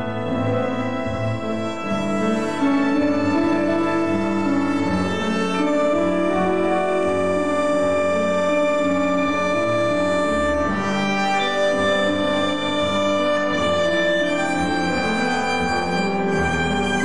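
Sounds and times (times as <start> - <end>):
bandoneon: 0.0 - 17.0
double bass: 0.0 - 17.0
piano: 0.0 - 17.0
violin bowing long notes: 0.0 - 17.0.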